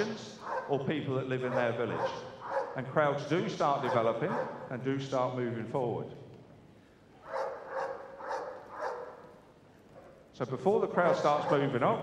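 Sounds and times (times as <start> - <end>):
dog barking: 0.4 - 0.8, 1.4 - 2.8, 3.8 - 4.6, 7.2 - 9.3, 11.0 - 11.8.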